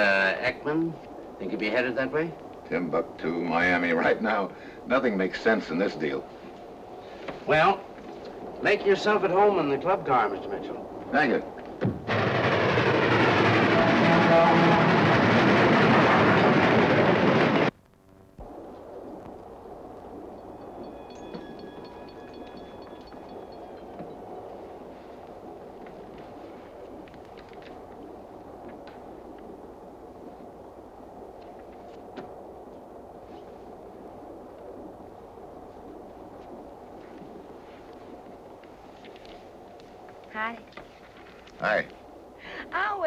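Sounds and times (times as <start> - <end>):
train rumble inside railway car: 13.1 - 17.7
thin high tone: 20.2 - 25.2
faint clicks: 25.2 - 29.5.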